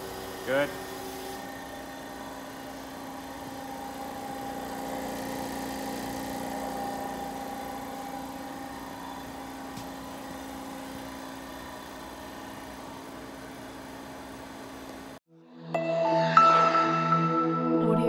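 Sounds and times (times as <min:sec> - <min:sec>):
steady machine hum: 0:00.0 - 0:15.2.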